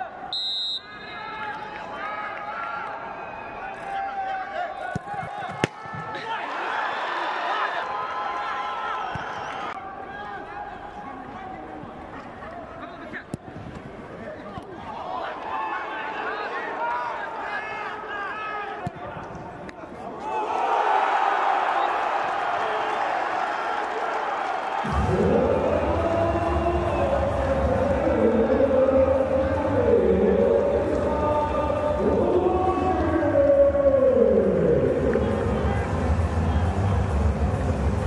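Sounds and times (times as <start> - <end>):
players shouting: 0.0 - 11.4, 14.3 - 36.9
crowd cheering: 0.0 - 13.2, 14.2 - 38.0
crowd noise: 0.0 - 38.0.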